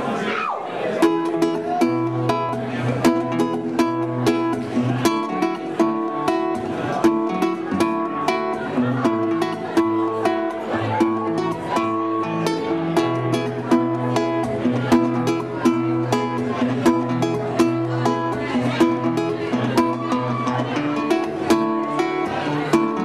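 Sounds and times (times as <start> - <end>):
picked acoustic guitar: 0.8 - 23.0.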